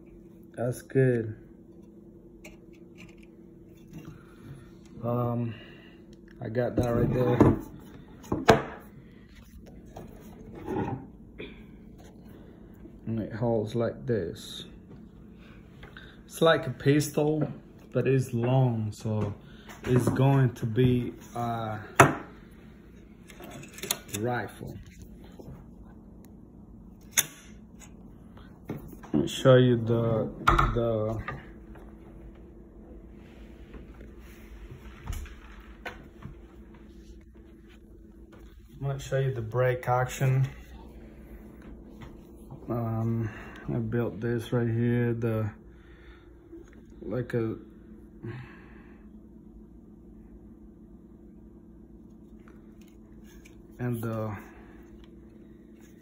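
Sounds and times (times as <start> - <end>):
low room hum: 0.0 - 56.0.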